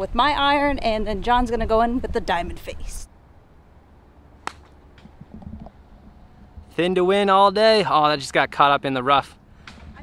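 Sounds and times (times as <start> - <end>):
golf club striking ball: 4.4 - 5.3.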